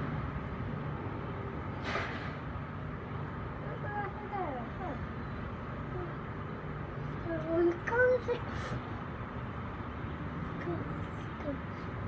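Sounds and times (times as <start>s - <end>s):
low rumble of traffic: 0.0s - 12.0s.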